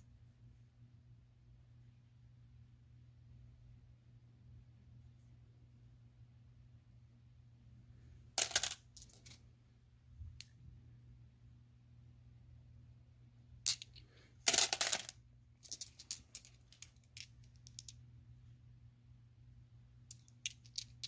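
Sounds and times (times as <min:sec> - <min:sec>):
faint low hum: 0:00.0 - 0:21.0
stones clicking and clattering: 0:13.7 - 0:18.0, 0:20.1 - 0:21.0.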